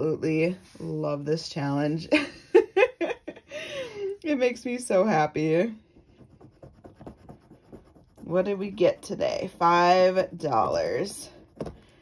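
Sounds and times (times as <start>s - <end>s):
coin scratching paper card: 6.1s - 9.2s.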